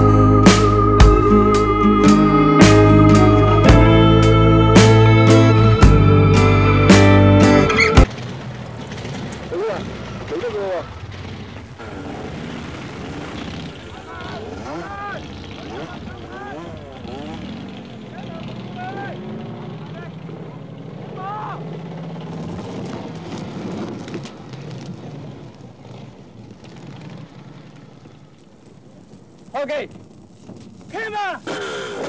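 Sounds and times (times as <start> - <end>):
distant voices calling out: 0.0 - 32.0.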